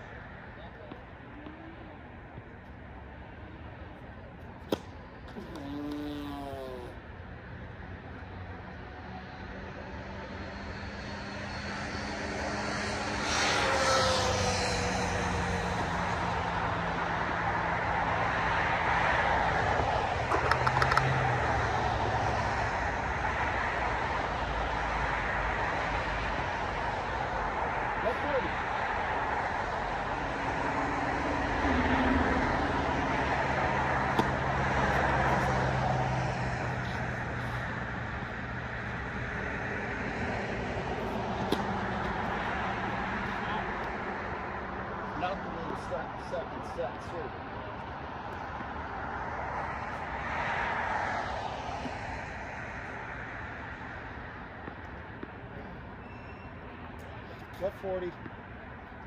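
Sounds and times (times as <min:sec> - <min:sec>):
distant engine drone: 0:00.0 - 0:59.0.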